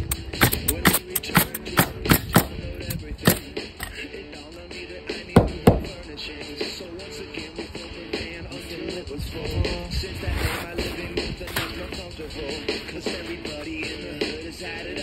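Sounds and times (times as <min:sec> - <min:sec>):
pneumatic nailer firing: 0:00.0 - 0:03.4
background music: 0:00.0 - 0:15.0.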